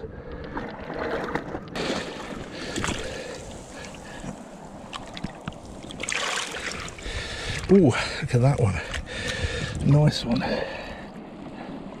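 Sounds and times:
seawater sloshing and splashing: 0.5s - 7.8s.

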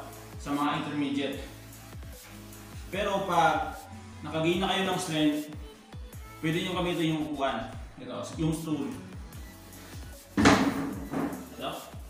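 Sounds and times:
background music with steady beat: 0.0s - 12.0s
plastic chair knocking on tiles: 10.4s - 11.5s.

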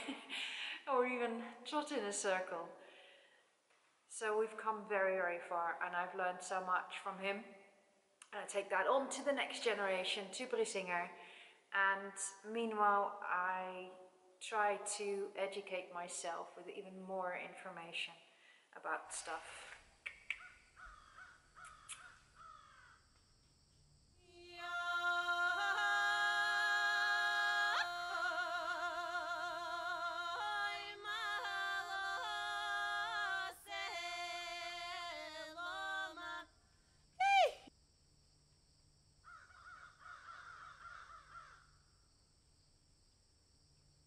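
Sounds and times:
short repeated bird calls: 20.0s - 23.0s.

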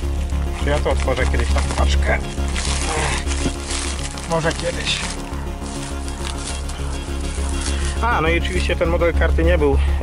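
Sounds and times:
bubble wrap crinkling: 0.0s - 8.7s
background music: 0.0s - 10.0s.

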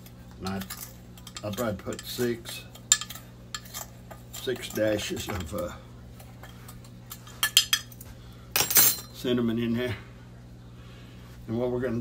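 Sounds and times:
kitchenware clinking: 0.0s - 9.2s.

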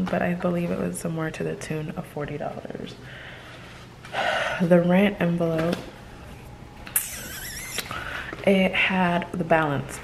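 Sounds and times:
squeaky rub of envelope: 7.0s - 7.9s.

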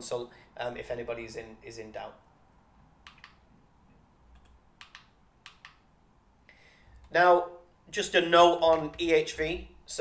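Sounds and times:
computer mouse clicks: 3.0s - 3.4s, 4.3s - 5.8s.

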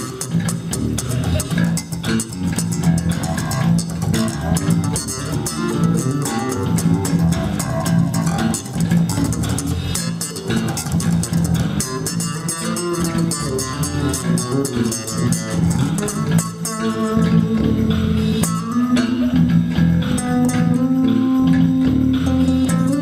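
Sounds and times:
electric bass guitars jamming: 0.0s - 23.0s.

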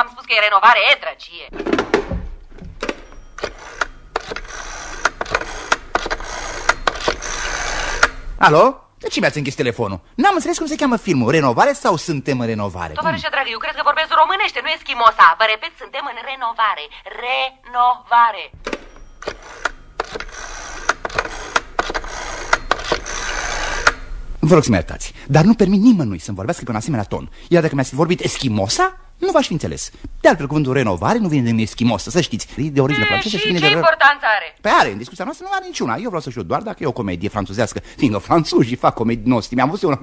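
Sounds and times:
irregular sharp clicks and knocks: 1.6s - 8.2s, 18.6s - 24.0s.

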